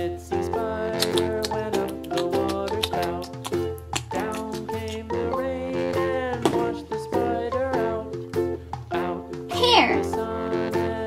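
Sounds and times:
children's music with plucked ukulele: 0:00.0 - 0:11.0.

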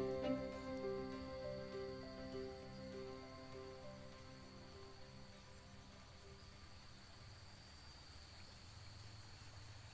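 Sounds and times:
insect high whine: 0:00.0 - 0:09.9
rapid high-pitched insect chirping: 0:00.0 - 0:09.9.

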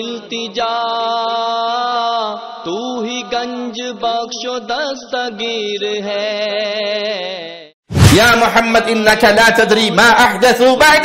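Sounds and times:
person chanting devotional verse: 0:00.0 - 0:11.0.

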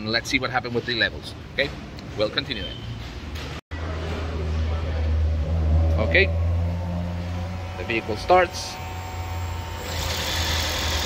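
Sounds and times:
petrol engine humming: 0:05.1 - 0:11.0.

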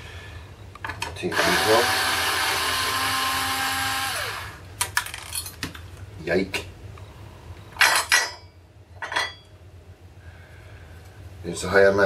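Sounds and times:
small metal parts clinking: 0:04.9 - 0:05.8.

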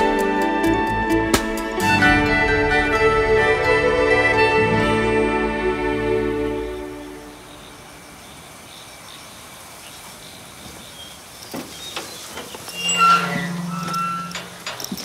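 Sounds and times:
gate hinge creak: 0:12.0 - 0:15.0.

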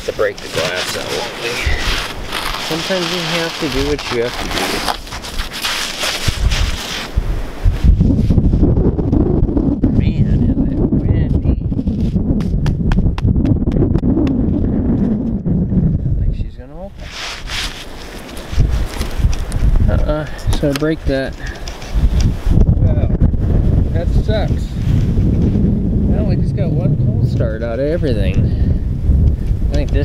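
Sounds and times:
wind gusting against microphone: 0:00.0 - 0:30.0.

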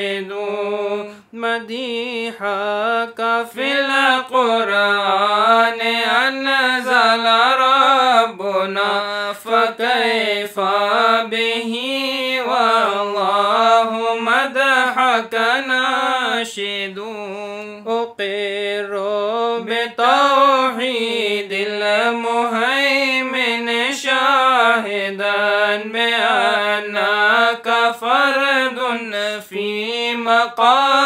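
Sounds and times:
person chanting verse: 0:00.0 - 0:31.0.

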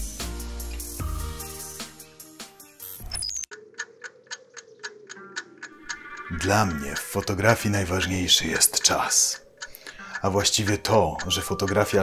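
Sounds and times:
background music: 0:00.0 - 0:03.3, 0:10.0 - 0:12.0
fast clock-like ticking: 0:03.5 - 0:12.0.

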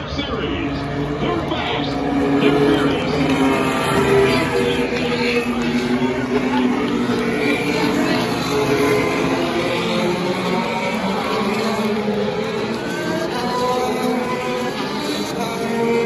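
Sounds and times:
race car engines passing: 0:00.0 - 0:16.0
voices: 0:00.0 - 0:16.0.

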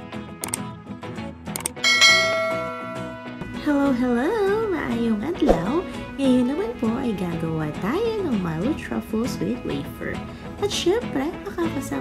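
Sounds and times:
background music: 0:00.0 - 0:12.0
bright bell chime: 0:01.8 - 0:03.6.

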